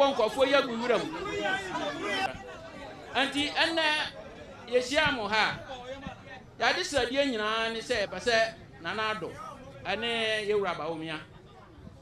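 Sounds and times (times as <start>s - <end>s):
crowd chatter: 0.0s - 12.0s
people talking: 0.0s - 12.0s.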